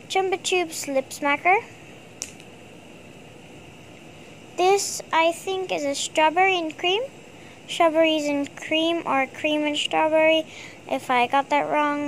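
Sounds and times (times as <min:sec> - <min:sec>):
room noise hiss: 0:00.0 - 0:12.0.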